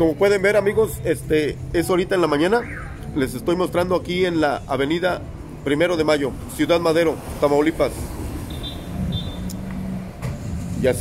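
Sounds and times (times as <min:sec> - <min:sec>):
traffic rumble: 0:00.0 - 0:11.0.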